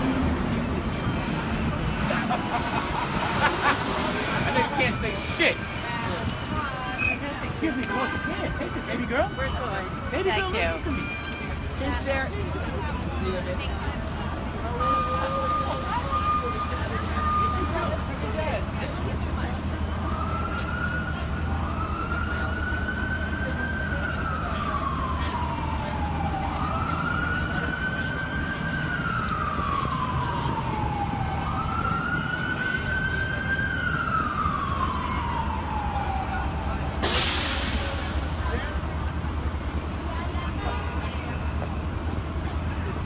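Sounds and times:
city traffic rumble: 0.0 - 43.0
emergency vehicle siren wailing: 0.0 - 43.0.

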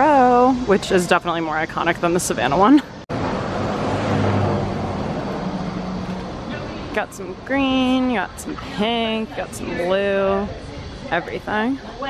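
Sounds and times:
vehicle engine hum: 0.0 - 11.7
road noise hiss: 0.0 - 12.0.

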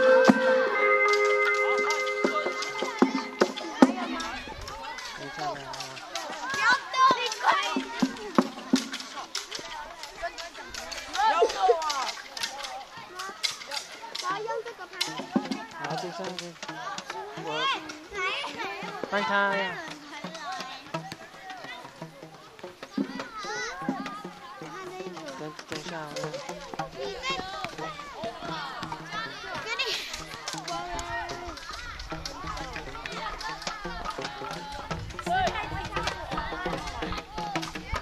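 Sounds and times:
children chattering and calling: 0.0 - 38.0.

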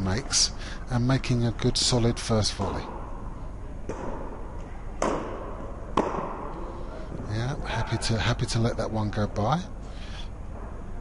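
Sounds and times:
racket striking tennis ball: 3.8 - 6.6.

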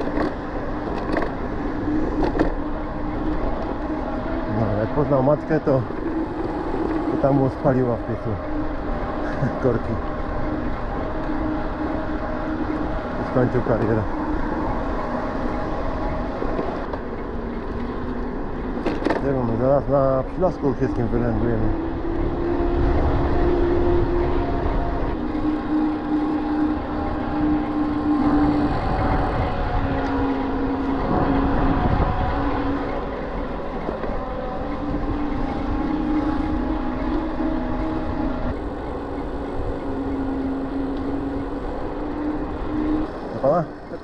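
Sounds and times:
tyre noise on asphalt: 0.0 - 4.8
electric motor whining: 20.6 - 44.0
wind rumble on microphone: 20.6 - 44.0.

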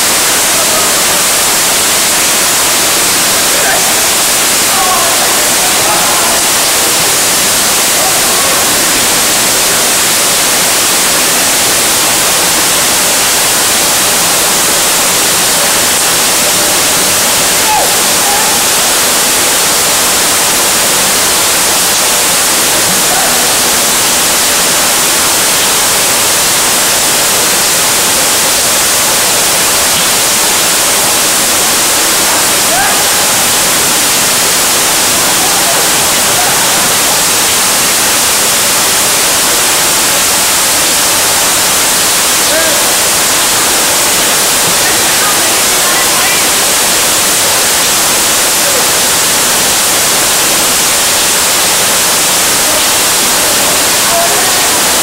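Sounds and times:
rain falling steadily: 0.0 - 55.0
faint voices calling out: 3.5 - 6.7.

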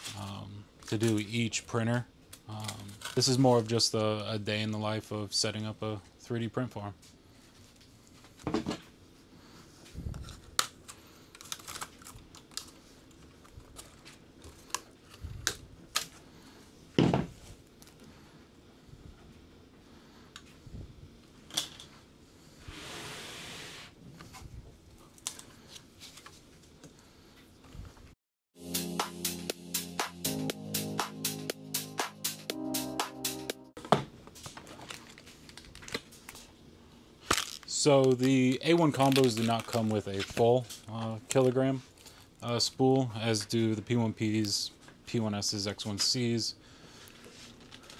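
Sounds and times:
plastic bag crinkle: 37.2 - 40.7.

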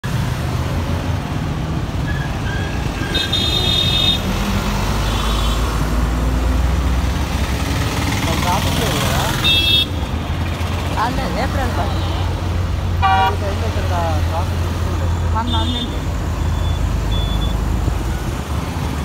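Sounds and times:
traffic engine rumble: 0.0 - 19.0
vehicle horns honking: 3.0 - 4.2, 9.3 - 10.1, 13.0 - 13.5, 15.4 - 16.1.

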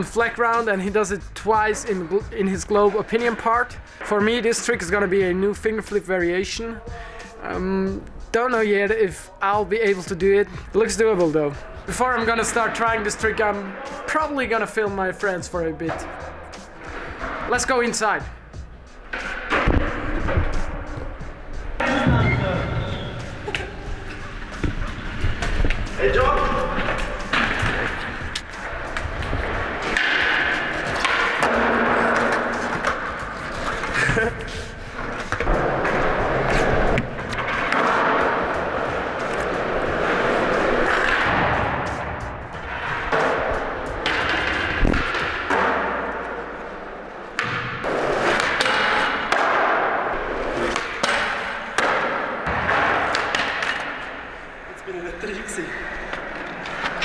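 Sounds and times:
skateboard wheels rolling on concrete: 16.3 - 54.7
skateboards popping and landing: 21.7 - 46.5.

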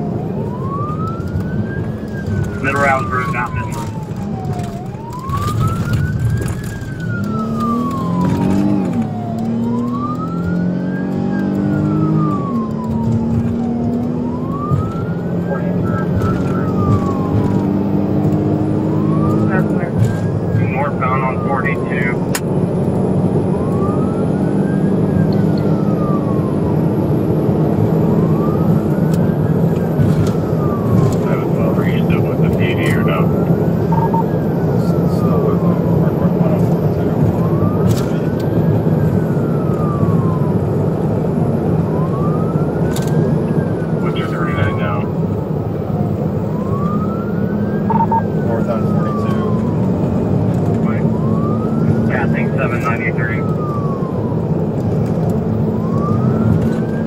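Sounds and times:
police siren wailing: 0.0 - 57.0
road and engine noise: 0.0 - 57.0.

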